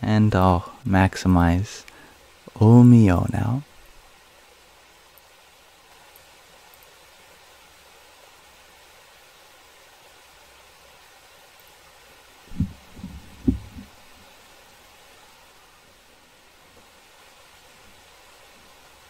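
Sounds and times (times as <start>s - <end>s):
faint steady hiss: 0.0s - 19.0s
dull thumps on microphone: 12.5s - 13.9s.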